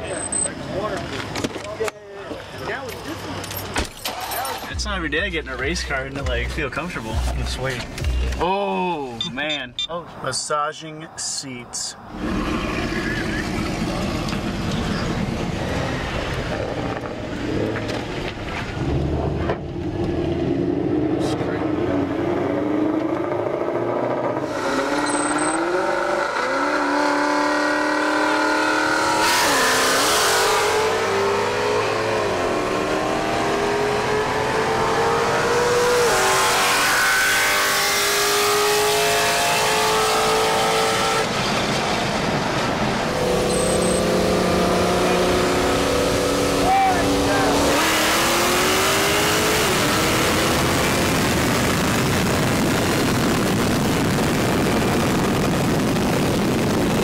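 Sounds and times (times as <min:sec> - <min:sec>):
wind and road noise: 0:00.0 - 0:57.0
car engine accelerating: 0:12.1 - 0:57.0.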